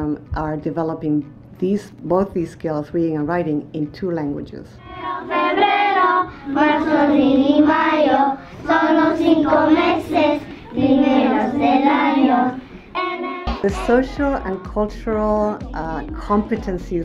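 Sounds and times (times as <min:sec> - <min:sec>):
young children singing together: 0:04.8 - 0:13.6.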